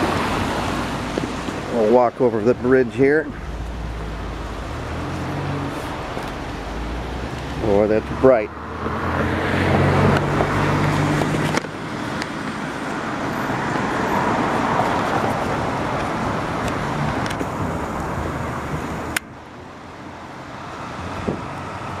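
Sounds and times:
road traffic rushing: 0.0s - 22.0s
vehicle engine hum: 0.0s - 22.0s.

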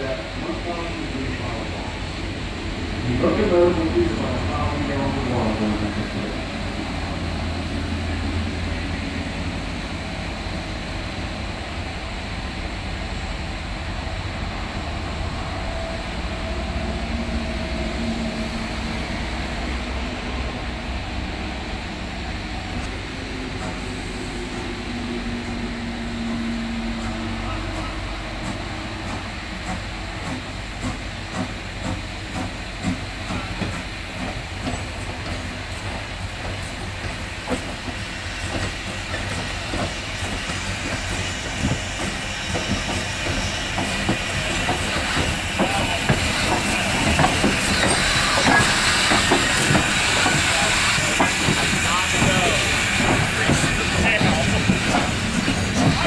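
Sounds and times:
steam hissing: 0.0s - 56.0s
locomotive running gear clanking: 27.0s - 56.0s.

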